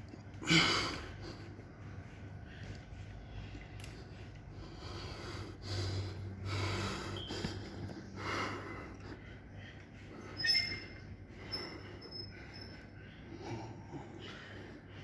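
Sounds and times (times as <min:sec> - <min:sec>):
low steady hum: 0:00.0 - 0:15.0
person breathing forcefully through nose: 0:02.4 - 0:10.2.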